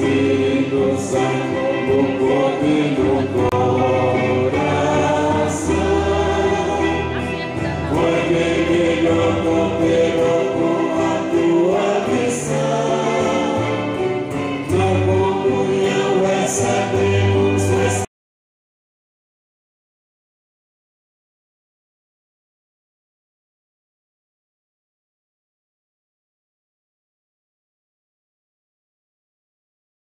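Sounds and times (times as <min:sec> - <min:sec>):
choir singing a hymn: 0:00.0 - 0:18.1.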